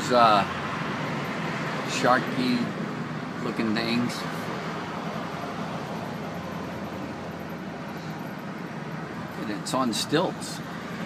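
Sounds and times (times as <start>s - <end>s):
vehicle road and engine noise: 0.0s - 11.0s.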